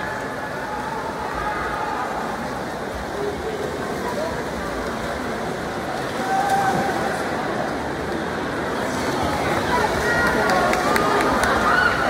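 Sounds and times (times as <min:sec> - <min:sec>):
spectators' voices: 0:00.0 - 0:12.0
swimmers splashing: 0:00.0 - 0:12.0.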